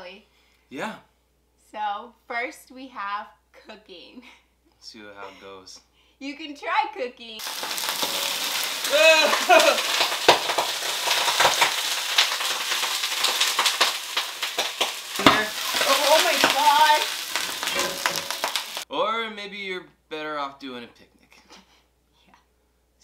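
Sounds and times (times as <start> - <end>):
pan clicks and clanks: 7.4 - 16.6, 17.2 - 18.8
food sizzling in a pan: 7.4 - 18.9.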